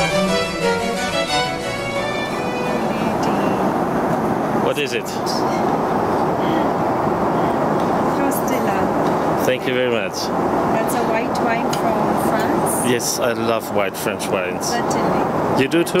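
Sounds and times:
aircraft cabin noise: 0:00.0 - 0:16.0
voice: 0:02.5 - 0:03.8, 0:04.6 - 0:05.4, 0:08.1 - 0:16.0.

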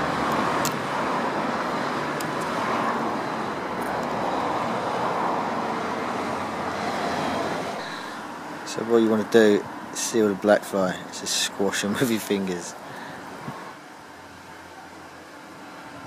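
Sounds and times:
distant road traffic: 0:00.0 - 0:16.0.

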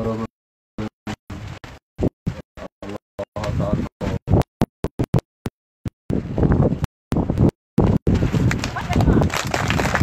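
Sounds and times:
people's voices outdoors: 0:00.0 - 0:05.2, 0:08.4 - 0:10.0.

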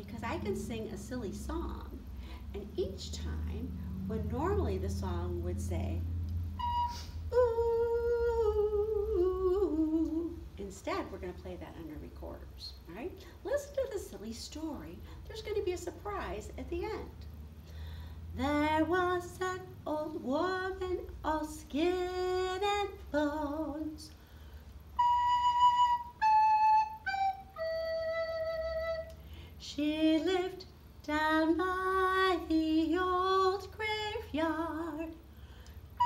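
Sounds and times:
recorder playing descending notes: 0:06.5 - 0:07.6, 0:24.9 - 0:29.2
woman singing wordless line: 0:07.3 - 0:12.6, 0:18.4 - 0:24.1, 0:29.6 - 0:35.2.

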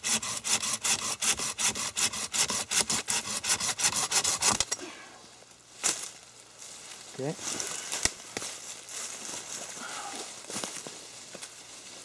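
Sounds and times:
pruning saw cutting sapling: 0:00.0 - 0:04.7.

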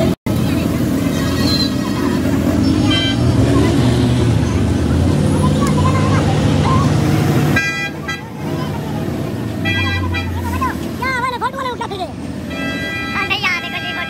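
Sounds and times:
heavy engine rumbling: 0:00.0 - 0:14.0
street traffic: 0:00.0 - 0:14.0
vehicle horn honking: 0:02.8 - 0:03.4, 0:07.5 - 0:08.4, 0:09.6 - 0:10.5, 0:12.4 - 0:14.0.

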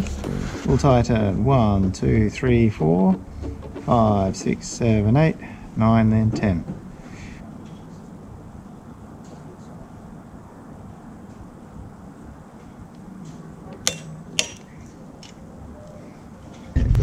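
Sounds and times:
torque wrench clicking: 0:13.8 - 0:15.4.

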